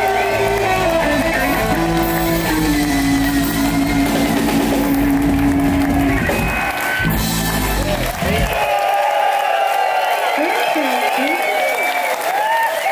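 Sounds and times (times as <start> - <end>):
blues-rock band playing: 0.0 - 8.7
audience applause and cheering: 0.0 - 12.9.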